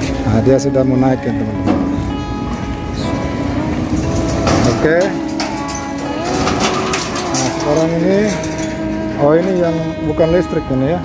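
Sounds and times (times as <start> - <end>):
synthetic electric car warning hum: 0.0 - 11.0.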